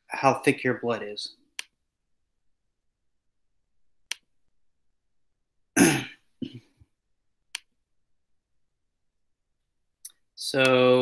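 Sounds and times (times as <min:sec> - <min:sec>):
man clearing his throat: 0:05.8 - 0:06.8.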